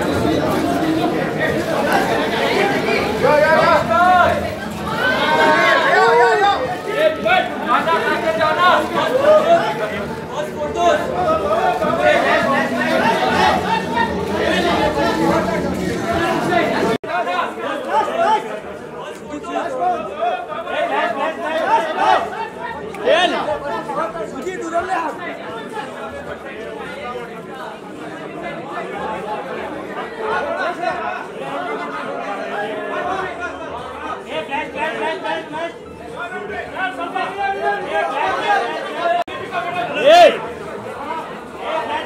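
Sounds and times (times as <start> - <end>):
indistinct crowd chatter: 0.0 - 42.0.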